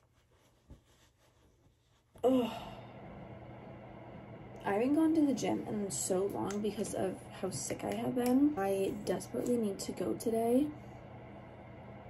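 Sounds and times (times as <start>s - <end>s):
low room hum: 0.0s - 12.0s
woman sighing: 2.2s - 3.0s.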